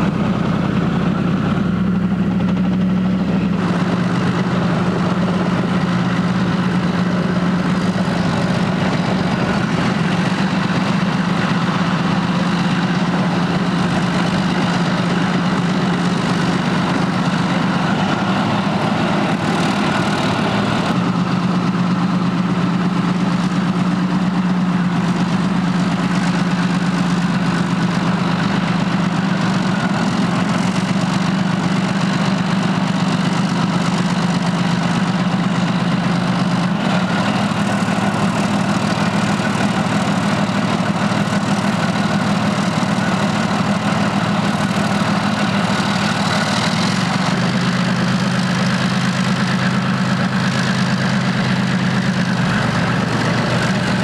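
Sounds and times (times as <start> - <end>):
tank diesel engine droning: 0.0 - 54.0.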